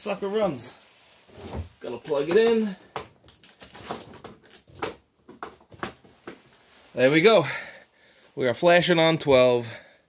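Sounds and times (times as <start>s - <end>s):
clicks and rustles of handling: 1.8s - 6.6s.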